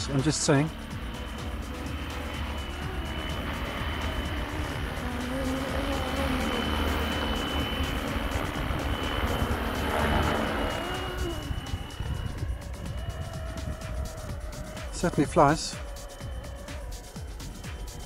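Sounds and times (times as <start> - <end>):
helicopter rotor tones: 0.0 - 18.0
rc helicopter motor whine: 0.0 - 18.0
wind rumble on microphone: 1.0 - 15.6.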